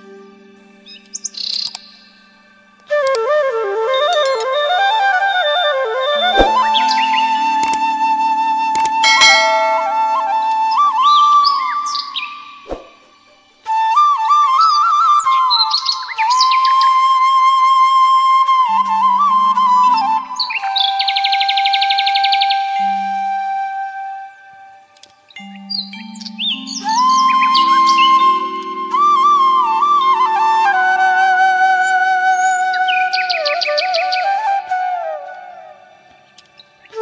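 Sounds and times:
flute melody: 0.0s - 37.0s
bird chirps: 0.9s - 2.1s, 4.2s - 4.4s, 8.8s - 13.3s
high bird chirps: 4.2s - 4.4s
sharp clicks: 4.2s - 4.4s, 7.6s - 7.8s, 8.8s - 9.0s.

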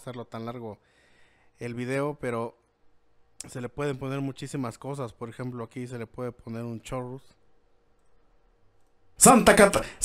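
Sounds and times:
person speaking: 9.2s - 10.0s.

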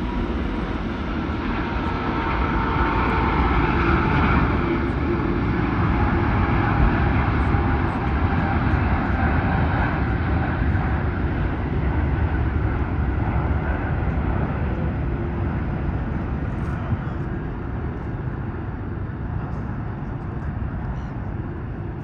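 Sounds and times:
jet engines at takeoff thrust: 0.0s - 22.0s.

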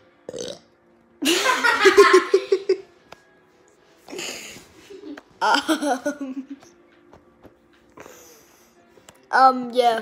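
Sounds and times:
boy burping loudly: 0.3s - 0.8s
boy laughing: 1.2s - 2.8s, 4.1s - 6.7s.

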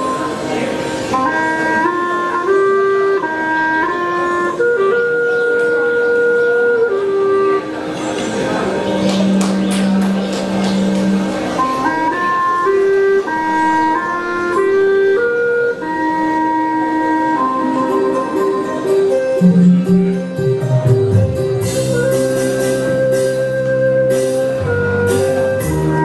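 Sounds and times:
bamboo flute slow melody: 0.0s - 26.0s.

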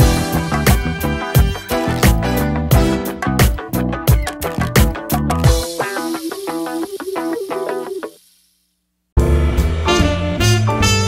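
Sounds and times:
fast background music: 0.0s - 8.4s.

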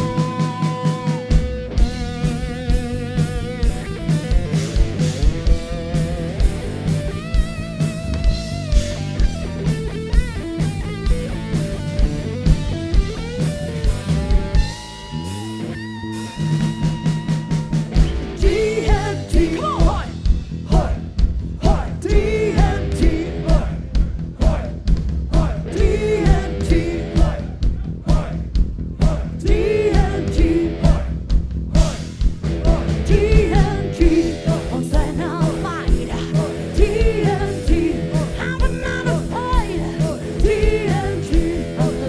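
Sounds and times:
drum kit beat: 0.0s - 42.0s
electric guitars and bass: 0.0s - 42.0s
person singing: 18.4s - 20.1s, 32.6s - 42.0s.

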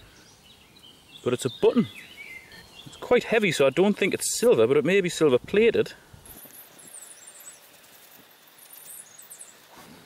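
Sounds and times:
faint high-pitched chirping: 6.3s - 9.8s.

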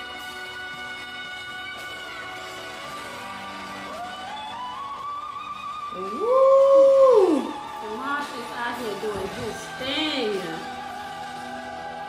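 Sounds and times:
soft instrumental backing: 0.0s - 12.0s.

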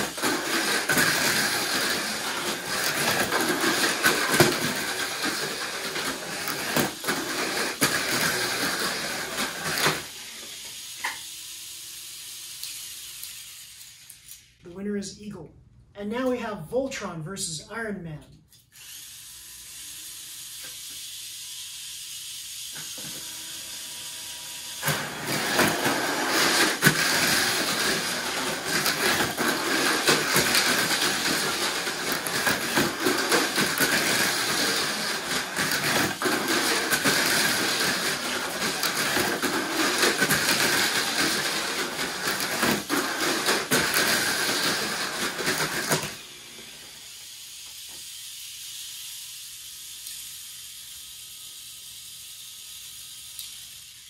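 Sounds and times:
small electric motors whining: 0.0s - 14.6s, 18.6s - 54.0s.

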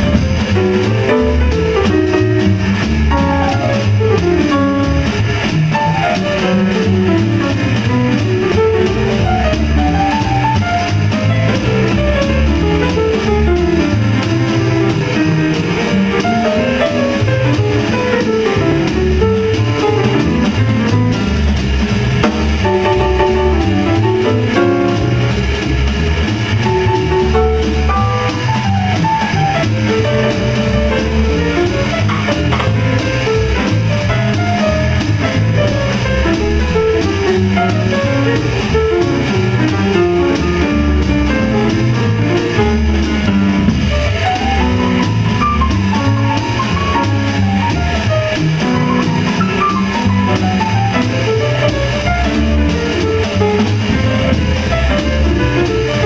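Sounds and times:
drum kit: 0.0s - 56.0s
piano runs: 0.0s - 56.0s
plucked double bass: 0.0s - 56.0s.

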